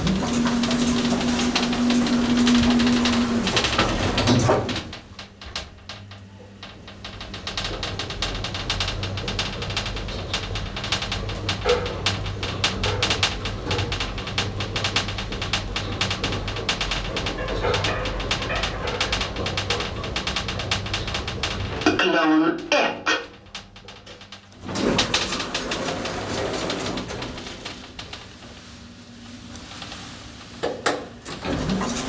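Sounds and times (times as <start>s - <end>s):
elevator car clicking rattle: 0.0s - 28.7s, 29.6s - 32.0s
elevator drive humming: 0.0s - 32.0s.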